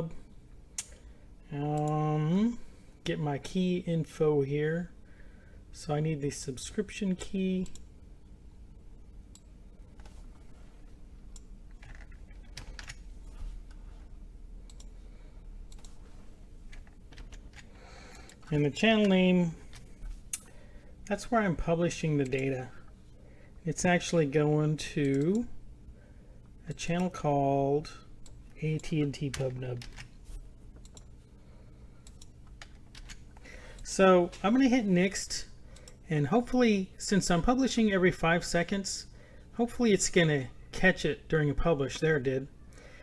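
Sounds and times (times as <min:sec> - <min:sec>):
computer keyboard keys clicking: 0:11.4 - 0:13.0, 0:16.7 - 0:19.1.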